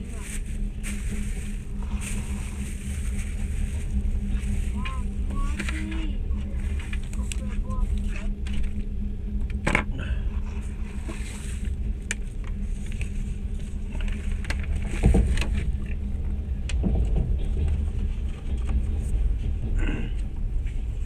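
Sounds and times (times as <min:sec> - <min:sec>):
train carriage rumble and hum: 0:00.0 - 0:21.0.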